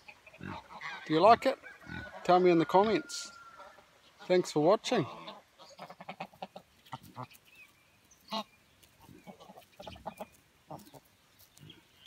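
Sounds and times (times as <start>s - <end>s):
geese calling: 0.0s - 11.1s
geese plucking grass clicks: 5.3s - 12.0s.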